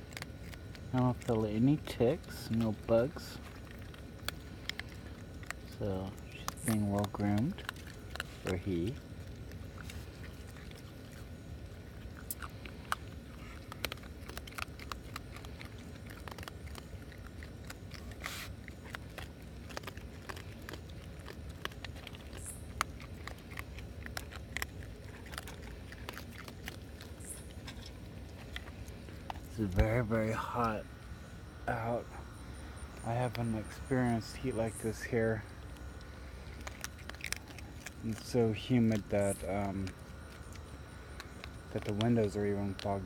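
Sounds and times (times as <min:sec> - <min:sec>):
raccoon crunching dry kibble: 0:00.0 - 0:43.0.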